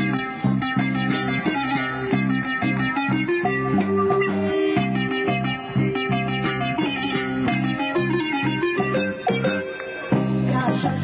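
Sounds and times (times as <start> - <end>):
instrumental band music: 0.0 - 11.0.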